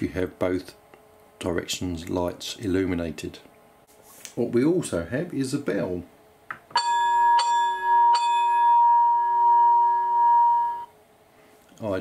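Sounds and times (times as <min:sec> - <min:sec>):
locomotive bell ringing: 0:06.8 - 0:10.9.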